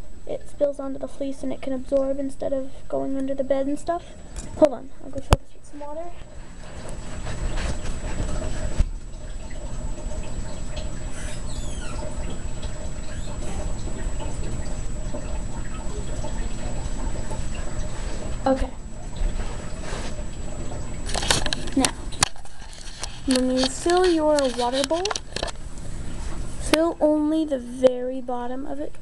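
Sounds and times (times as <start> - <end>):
water running from tap: 0.0 - 29.0.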